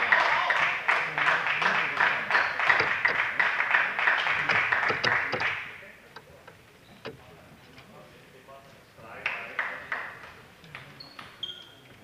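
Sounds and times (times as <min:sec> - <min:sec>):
spectators clapping: 0:00.0 - 0:05.8, 0:09.2 - 0:10.4.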